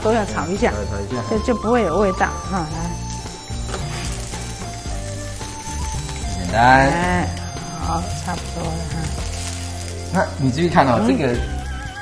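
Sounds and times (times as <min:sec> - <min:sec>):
background music: 0:00.0 - 0:12.0
mushrooms sizzling in a frying pan: 0:00.0 - 0:12.0.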